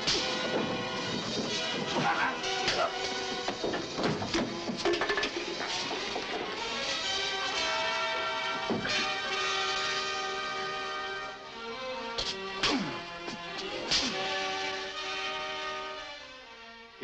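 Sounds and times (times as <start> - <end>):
blows and bodies hitting wood: 0.0 - 6.7, 7.5 - 10.2
dramatic orchestral music: 0.0 - 17.0.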